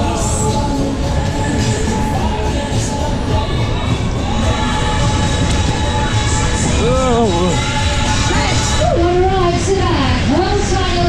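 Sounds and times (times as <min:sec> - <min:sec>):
fairground music: 0:00.0 - 0:11.0
fairground ride rumbling: 0:00.0 - 0:11.0
riders shouting: 0:06.4 - 0:09.1.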